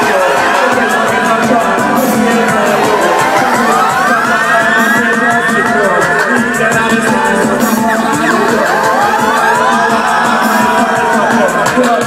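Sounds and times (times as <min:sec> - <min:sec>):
dub rhythm on sound system: 0:00.0 - 0:12.0
dub siren sweeping upward: 0:02.3 - 0:05.0, 0:07.7 - 0:11.1.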